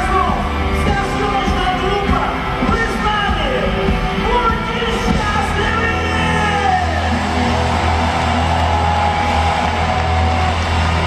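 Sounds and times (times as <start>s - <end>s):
heavy bass: 0.0s - 11.0s
live rock band playing: 0.0s - 11.0s.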